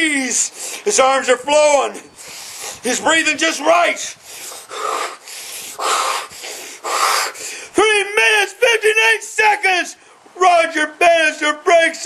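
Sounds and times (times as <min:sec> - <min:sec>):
man breathing hard: 0:00.5 - 0:00.9, 0:02.1 - 0:02.9, 0:04.0 - 0:07.8.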